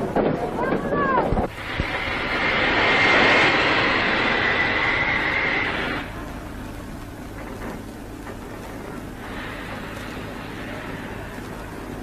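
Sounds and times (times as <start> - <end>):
steam locomotive hissing: 1.4 - 6.8, 7.4 - 12.0.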